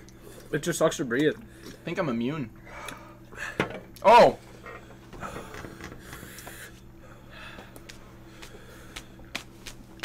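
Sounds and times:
steady low hum: 0.0s - 10.0s
faint breaths: 4.5s - 9.3s.

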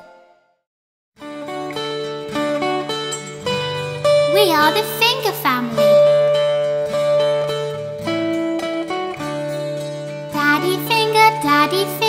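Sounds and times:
plucked string notes: 1.3s - 12.0s
held chords: 1.4s - 12.0s.

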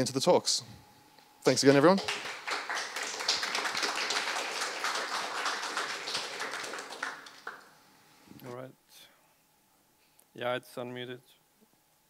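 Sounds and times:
audience applauding: 1.8s - 7.8s.

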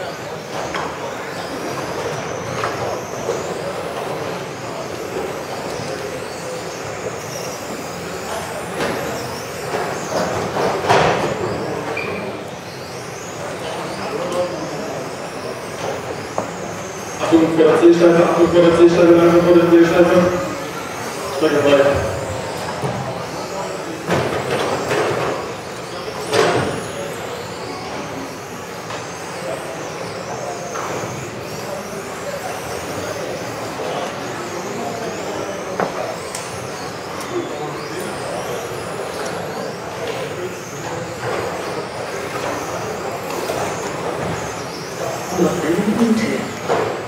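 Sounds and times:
echoing tyre and motor noise: 0.0s - 47.0s
rc car motors whining: 0.0s - 47.0s.

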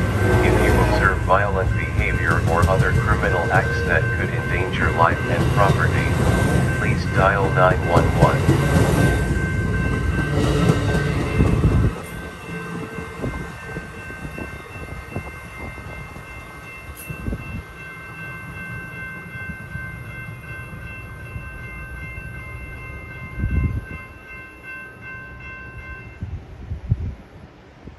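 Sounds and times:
train wheels rumbling: 0.0s - 27.8s.

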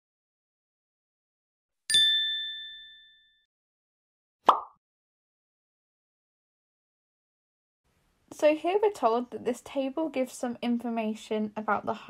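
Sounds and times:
bright chime ding: 1.9s - 3.4s.

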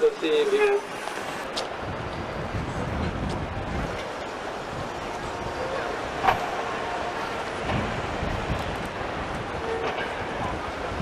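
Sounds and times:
traffic: 0.0s - 11.0s
crowd noise: 3.7s - 11.0s.

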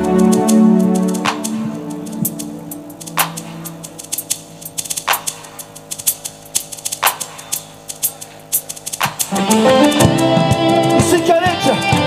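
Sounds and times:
drummer ticking on hi-hat: 0.0s - 12.0s
faint held notes: 0.0s - 12.0s
full rock band playing: 9.3s - 12.0s.

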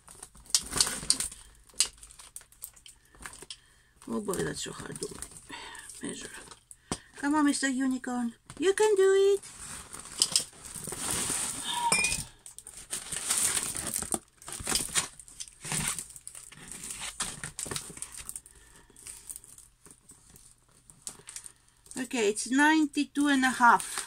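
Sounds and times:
plastic film crinkling: 0.0s - 6.8s, 8.5s - 22.0s, 23.2s - 24.0s.

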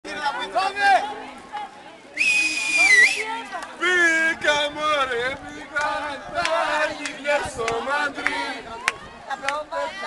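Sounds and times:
loud high-pitched whistle: 2.2s - 3.3s.

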